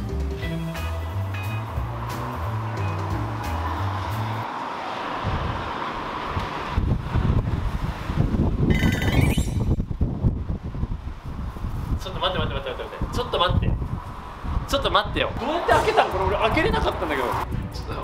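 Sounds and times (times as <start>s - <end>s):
background music with bass line: 0.0s - 4.4s, 15.8s - 18.0s
wind buffeting microphone: 5.0s - 18.0s
high whistle-like sound: 8.7s - 9.8s.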